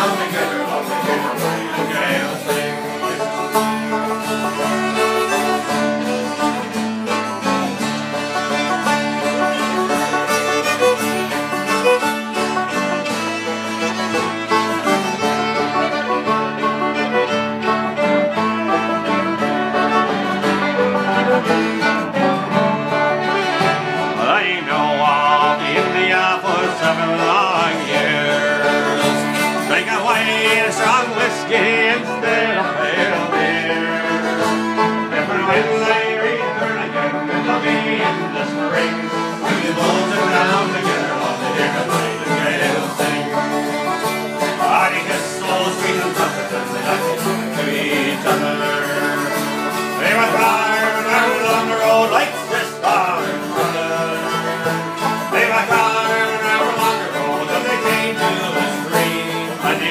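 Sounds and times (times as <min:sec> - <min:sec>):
banjo picking: 0:00.0 - 0:59.9
fiddle playing: 0:00.0 - 0:59.9.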